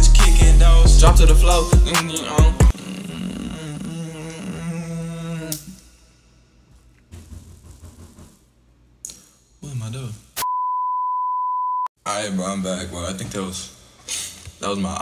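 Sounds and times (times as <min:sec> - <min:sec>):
person singing: 0:00.0 - 0:05.8
steady high beep: 0:10.4 - 0:11.9.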